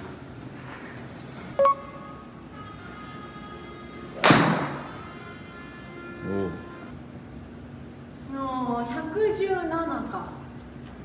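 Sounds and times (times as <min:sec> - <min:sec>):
short beep: 0:01.6 - 0:02.2.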